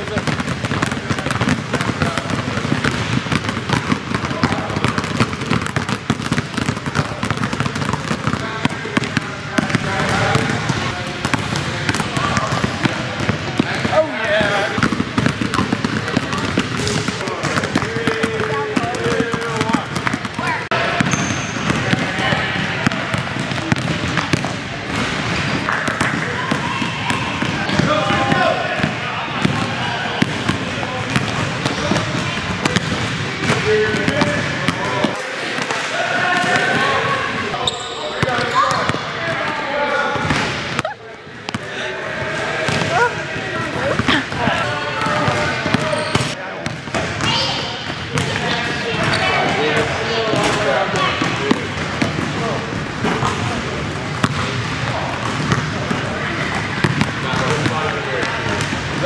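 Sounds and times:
basketballs bouncing on gym floor: 0:00.0 - 0:41.7, 0:42.6 - 0:59.0.

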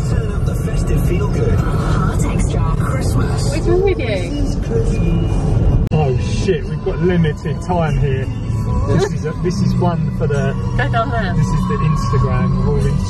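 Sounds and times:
car engine and road noise: 0:00.0 - 0:13.0
indistinct voices: 0:00.0 - 0:13.0
music in car: 0:00.0 - 0:13.0.

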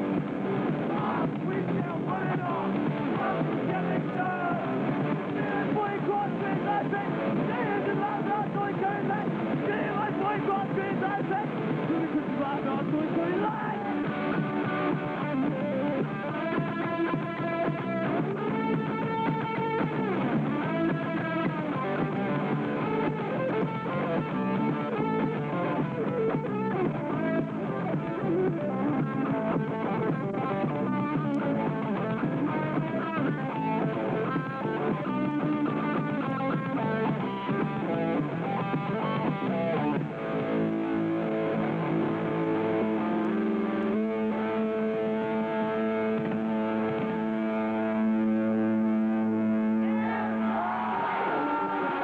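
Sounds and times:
distorted electric guitar: 0:00.0 - 0:52.0
punk band playing live: 0:00.0 - 0:52.0.

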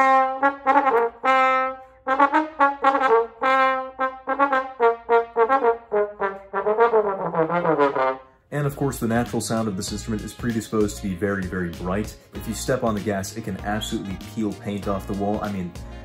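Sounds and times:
solo trombone jazz phrase: 0:00.0 - 0:08.4.

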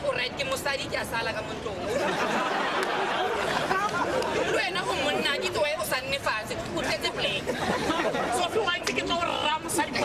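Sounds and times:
crowd chatter: 0:00.0 - 0:10.0
people talking: 0:00.0 - 0:10.0.

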